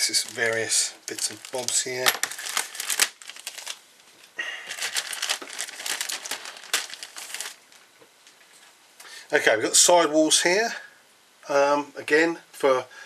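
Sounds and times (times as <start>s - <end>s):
plastic bag crinkling: 0.0s - 8.7s.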